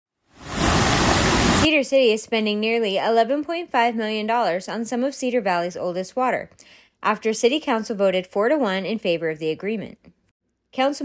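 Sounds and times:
stream water rushing over riffle: 0.4 - 1.7.

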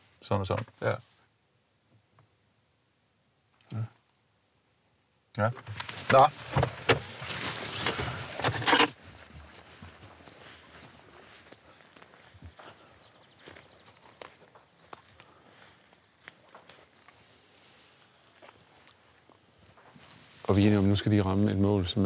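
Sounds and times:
footsteps through dry grass: 5.8 - 21.4.

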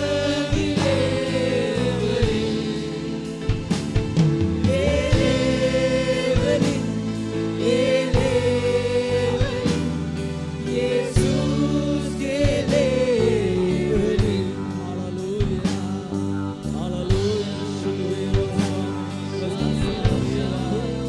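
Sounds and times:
live keyboard accompaniment: 0.0 - 21.0
man singing into a microphone: 11.1 - 21.0.

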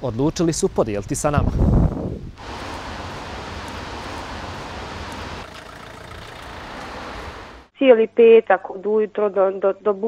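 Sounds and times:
wind on microphone: 1.2 - 5.4.

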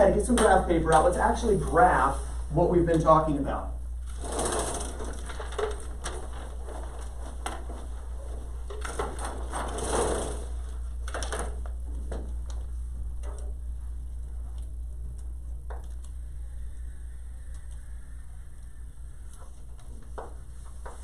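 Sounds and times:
steady low hum: 0.0 - 21.0
roller chart rustling and rattling: 4.0 - 14.7.

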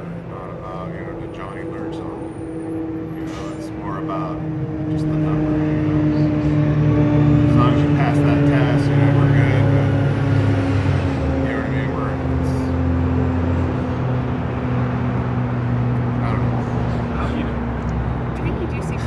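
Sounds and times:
faint voices: 0.0 - 2.3, 3.2 - 6.4, 7.5 - 10.0, 11.4 - 12.7, 16.1 - 17.6
loud engine drone: 0.0 - 19.0.

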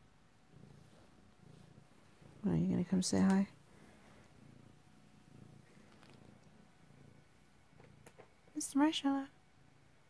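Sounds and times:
cat purring: 0.0 - 10.0.

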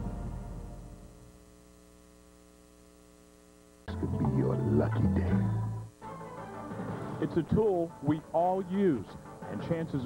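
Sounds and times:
faint mains hum: 0.0 - 10.0
voice speaking: 3.9 - 5.6
station music: 3.9 - 10.0.

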